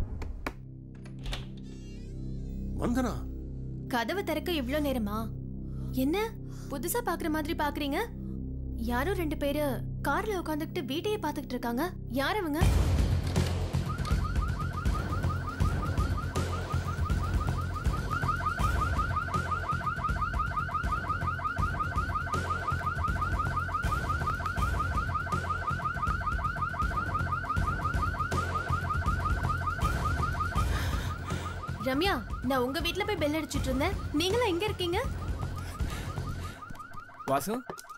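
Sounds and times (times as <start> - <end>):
car alarm chirping: 13.8 - 37.9.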